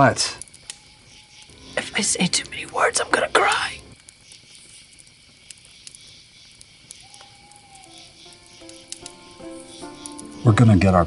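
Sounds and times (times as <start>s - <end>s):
campfire crackling: 0.0s - 11.0s
soft background music: 7.4s - 11.0s.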